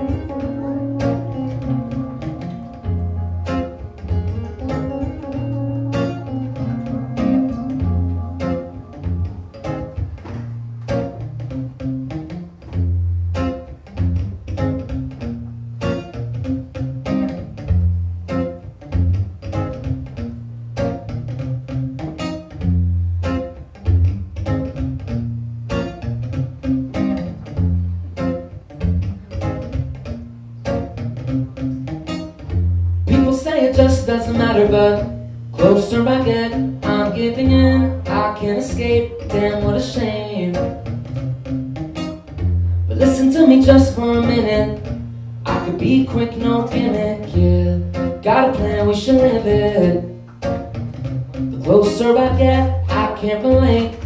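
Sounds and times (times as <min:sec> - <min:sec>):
acoustic guitar chords: 0:00.0 - 0:54.0
man singing: 0:33.1 - 0:40.8, 0:42.9 - 0:44.8, 0:45.5 - 0:50.1, 0:51.6 - 0:54.0.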